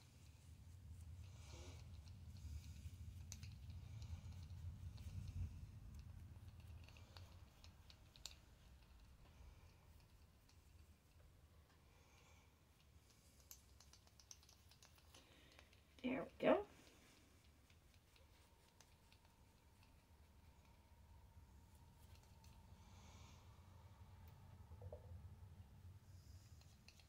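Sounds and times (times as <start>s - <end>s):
faint clicks: 1.8s - 16.0s.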